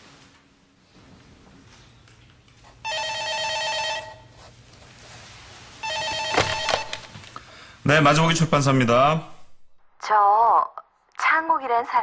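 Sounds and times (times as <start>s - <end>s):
telephone ringing: 2.8s - 4.4s, 5.8s - 7.3s.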